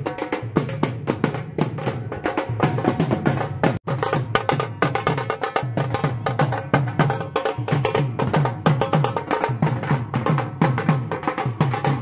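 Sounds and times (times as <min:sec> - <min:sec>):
barrel drum beats: 0:00.0 - 0:12.0.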